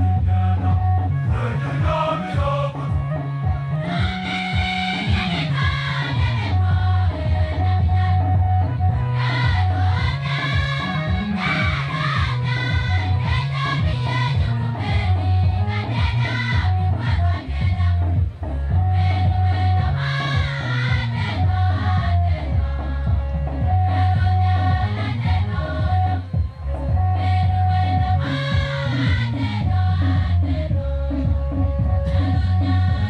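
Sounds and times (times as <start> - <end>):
choir singing gospel: 0.0 - 33.0
low bass accompaniment: 0.0 - 33.0.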